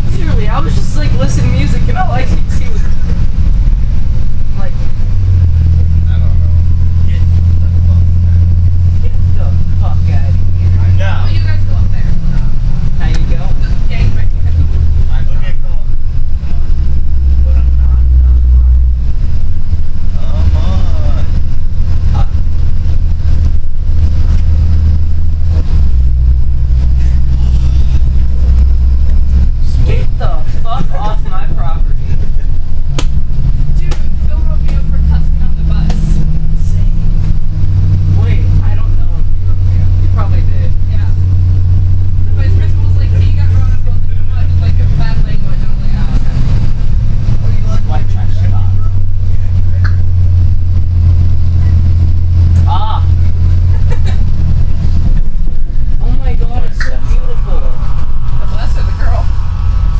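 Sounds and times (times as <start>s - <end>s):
bus engine droning: 0.0s - 59.9s
faint passenger chatter: 0.0s - 59.9s.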